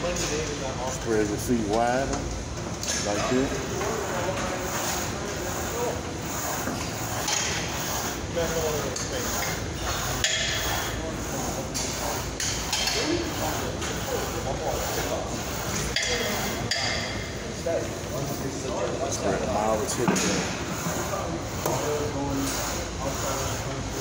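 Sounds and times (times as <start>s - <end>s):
faint voices: 0.0s - 24.0s.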